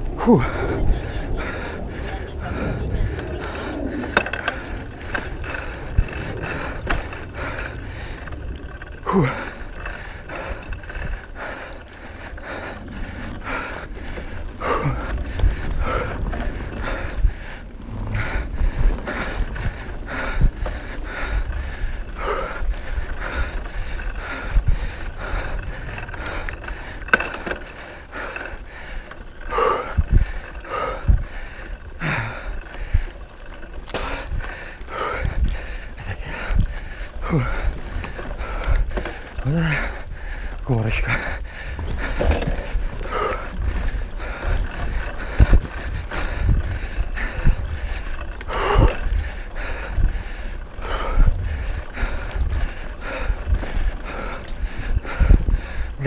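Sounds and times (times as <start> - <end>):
bike knocking and rattling: 0.0 - 56.0
tyre noise on dirt: 0.0 - 56.0
wind rumble on microphone: 0.0 - 56.0.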